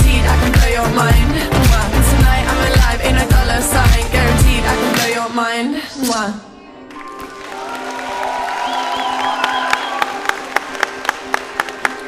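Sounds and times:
audience applauding and cheering: 0:06.9 - 0:12.0.

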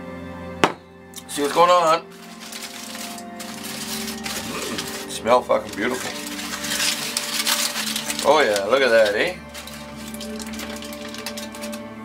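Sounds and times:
background music: 0:00.0 - 0:12.0
aluminium foil crinkling: 0:01.2 - 0:11.9.

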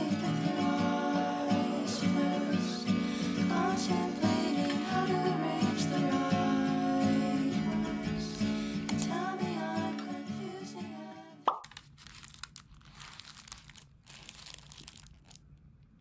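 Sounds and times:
gentle guitar music: 0:00.0 - 0:11.4
plastic wrappers crinkling: 0:11.6 - 0:16.0.

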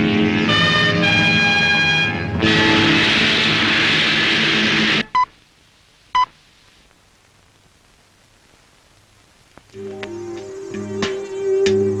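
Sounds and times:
loud rushing noise: 0:00.0 - 0:05.1
steady musical tones: 0:00.0 - 0:05.1, 0:09.8 - 0:12.0.

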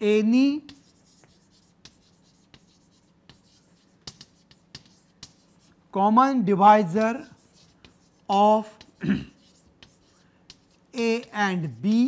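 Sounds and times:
chalk tapping and scratching: 0:00.4 - 0:05.9, 0:06.8 - 0:12.0.

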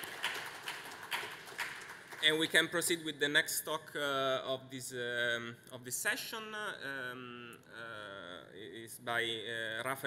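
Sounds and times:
slow hand claps: 0:00.0 - 0:02.2.

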